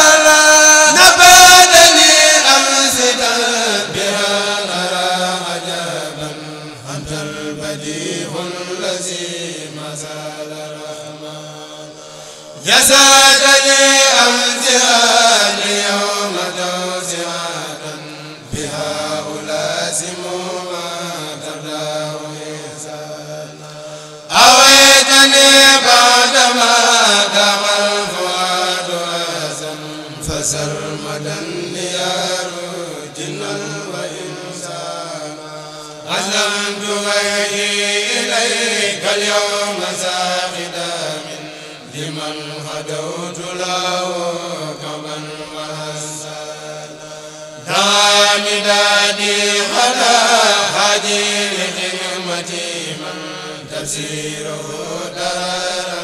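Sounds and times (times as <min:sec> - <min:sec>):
men chanting in unison: 0:00.0 - 0:56.0.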